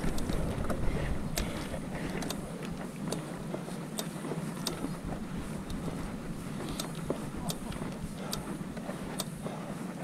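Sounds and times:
wind noise on microphone: 0.0 - 3.6, 4.6 - 9.6
bike clicks and rattles: 0.0 - 9.6
bike tyre rumble on dirt: 0.0 - 10.0.

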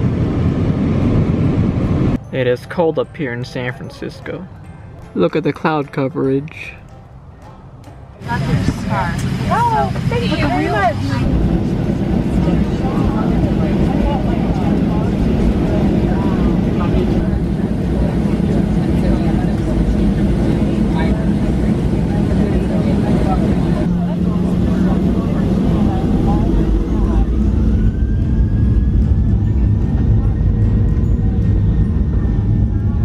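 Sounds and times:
jet engine whine: 0.0 - 2.2, 8.2 - 33.0
low engine and airframe rumble: 0.0 - 2.2, 6.6 - 33.0
faint voices: 8.2 - 28.1.

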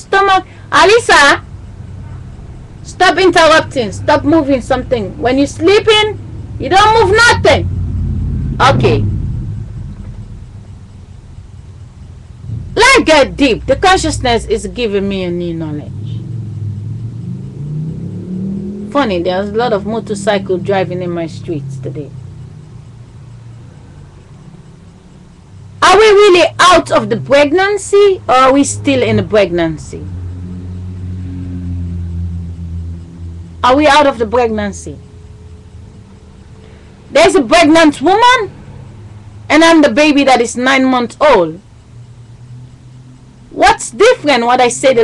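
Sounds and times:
motorcycle engine passing: 1.2 - 39.5, 41.4 - 43.6.

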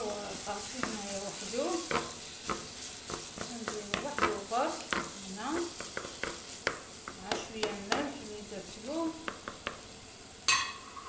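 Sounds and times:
spatula knocking frying pan: 0.0 - 8.2, 8.9 - 9.9
chicken sizzling in oil: 0.0 - 11.0.

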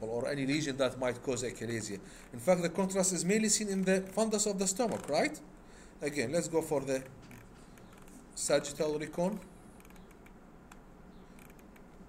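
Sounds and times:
low steady hum: 0.0 - 12.0
computer mouse clicks: 9.8 - 12.0.

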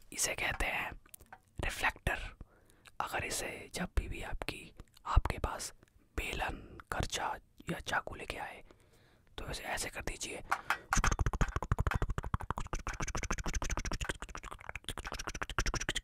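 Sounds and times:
man whispering: 0.1 - 8.7, 9.4 - 10.6.

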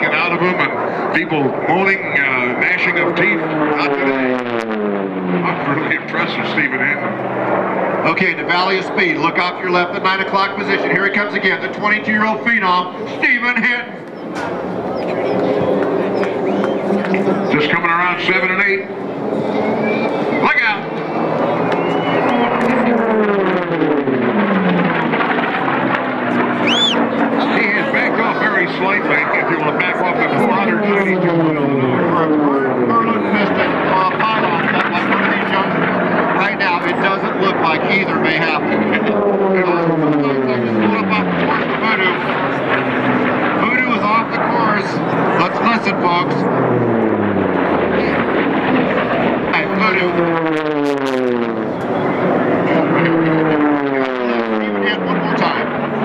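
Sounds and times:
propeller plane passing: 0.0 - 56.0.

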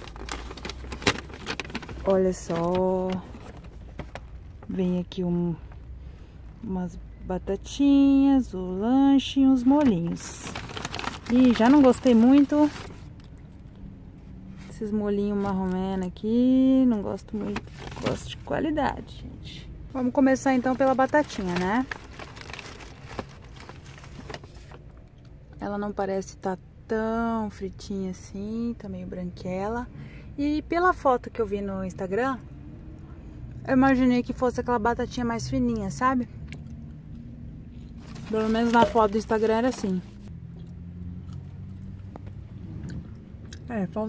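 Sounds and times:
paper bag rustling and crinkling: 0.0 - 4.8, 9.6 - 13.2, 14.6 - 16.1, 17.2 - 18.5, 19.9 - 24.9, 38.0 - 40.3
low car cabin hum: 0.0 - 25.7, 37.9 - 40.3.

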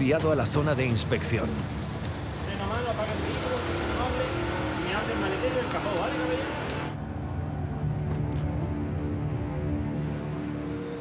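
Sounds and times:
low traffic noise: 0.0 - 11.0
low music drone: 1.6 - 11.0.

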